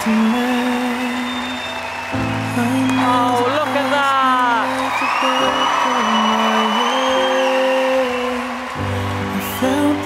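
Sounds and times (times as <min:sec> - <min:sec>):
audience applauding and cheering: 0:00.0 - 0:10.0.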